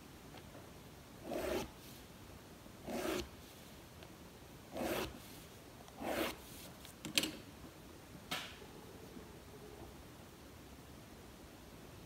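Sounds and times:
pen scratching along ruler: 0:01.2 - 0:01.8, 0:02.8 - 0:03.3, 0:04.7 - 0:05.3, 0:06.0 - 0:06.5.

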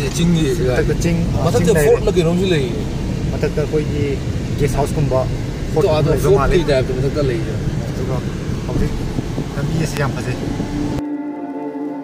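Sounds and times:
people talking: 0:00.0 - 0:10.6
car road and engine rumble: 0:00.0 - 0:11.0.

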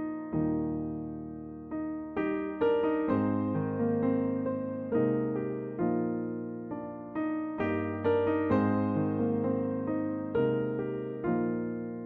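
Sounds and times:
slow gentle piano chords: 0:00.0 - 0:12.0.

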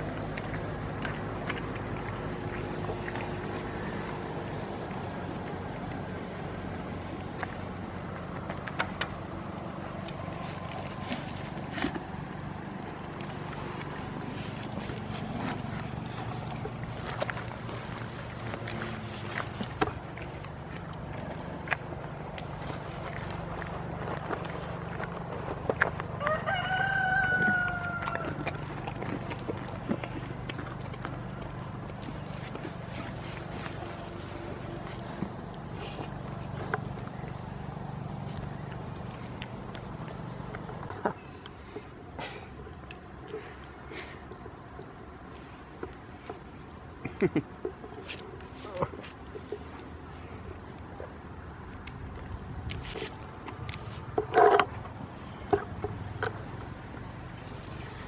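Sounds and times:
steady low hum: 0:00.0 - 0:58.0
rooster crowing: 0:26.2 - 0:28.4
clicks and rustles near microphone: 0:44.3 - 0:57.2.

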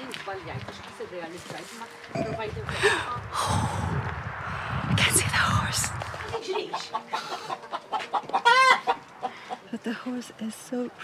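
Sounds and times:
chicken clucking: 0:06.6 - 0:09.7
chicken squawk: 0:06.9 - 0:09.6.

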